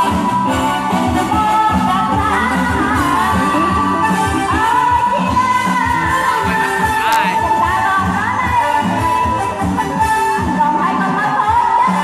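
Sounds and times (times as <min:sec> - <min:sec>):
live band dance music: 0:00.0 - 0:12.0
woman singing into microphone: 0:00.0 - 0:12.0.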